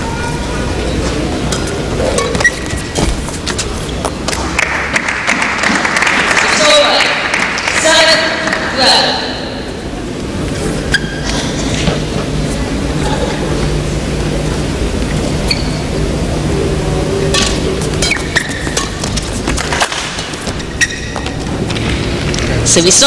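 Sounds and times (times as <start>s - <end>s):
low hall hum: 0.0s - 23.0s.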